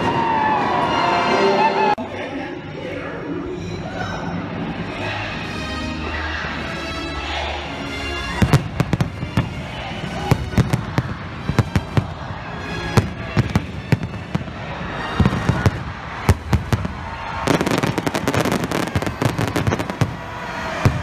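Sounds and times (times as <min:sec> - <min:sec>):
music playing: 0:00.0 - 0:21.0
fireworks bangs: 0:08.4 - 0:21.0.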